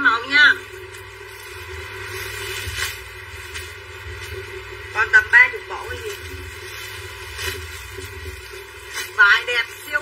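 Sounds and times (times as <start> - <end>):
woman speaking: 0.0 - 0.7, 4.9 - 6.3, 9.1 - 10.0.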